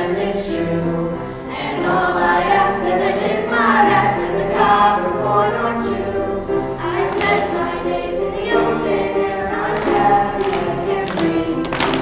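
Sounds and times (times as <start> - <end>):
children's chorus singing: 0.0 - 12.0
instrumental accompaniment: 0.0 - 12.0.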